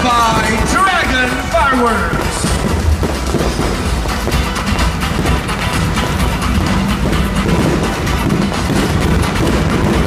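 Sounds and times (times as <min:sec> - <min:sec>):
fireworks barrage rumble and crackle: 0:00.0 - 0:10.0
music playing: 0:00.0 - 0:10.0.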